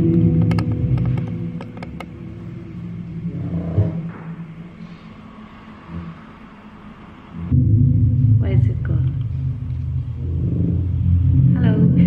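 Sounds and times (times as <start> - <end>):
faint hum: 0.0 - 12.0
loud low electronic drone: 0.0 - 12.0.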